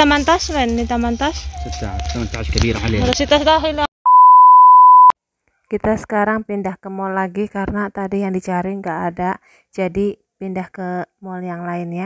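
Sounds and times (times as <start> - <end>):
voices in a shop: 0.0 - 3.9
loud steady test tone beep: 4.1 - 5.2.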